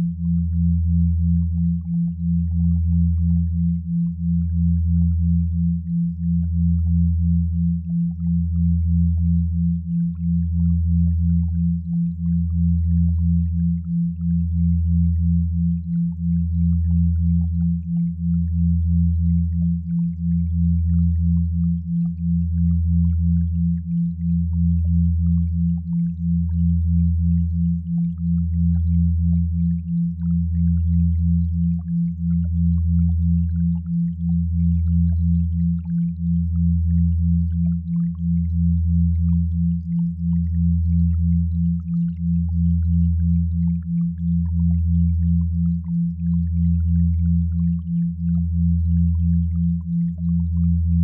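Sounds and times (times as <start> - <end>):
deep pulsing hum: 0.0 - 51.0.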